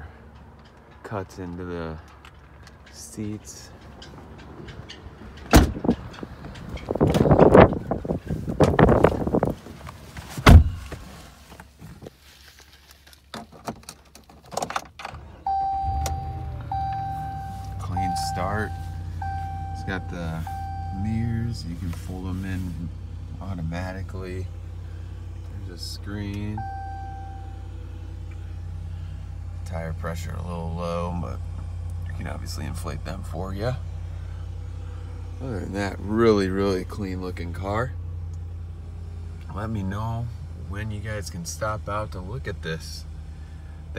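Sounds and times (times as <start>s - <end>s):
truck engine starting and idling: 0.0s - 9.8s, 14.7s - 43.9s
thumps and rustling: 3.9s - 14.8s
dashboard chime tone: 15.5s - 21.3s.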